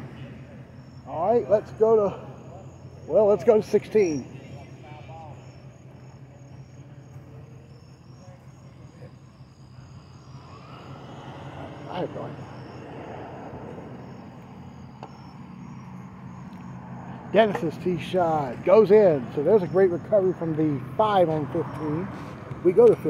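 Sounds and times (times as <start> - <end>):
distant voice: 0.0 - 23.0
faint distant traffic: 0.0 - 23.0
insects chirping: 0.0 - 23.0
steady low hum: 0.0 - 23.0.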